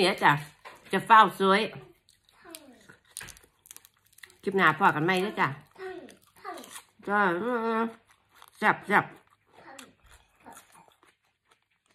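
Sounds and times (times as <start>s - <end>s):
wet chewing: 0.3s - 11.9s.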